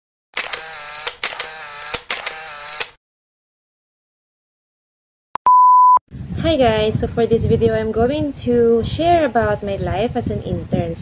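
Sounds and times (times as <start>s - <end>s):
sharp clicks: 0.4s - 3.0s
short mechanical whirs: 0.4s - 3.0s.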